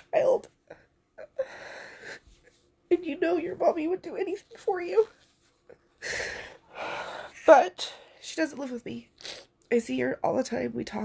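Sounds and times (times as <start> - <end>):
woman speaking: 0.0 - 0.6, 2.9 - 5.2, 7.3 - 9.1, 9.7 - 11.0.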